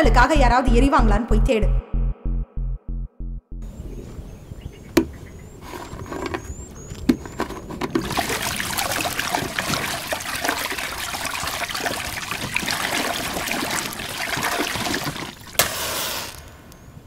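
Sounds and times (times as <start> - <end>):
pulsing music beat: 1.7 - 3.7
water splashing over head: 7.2 - 16.4.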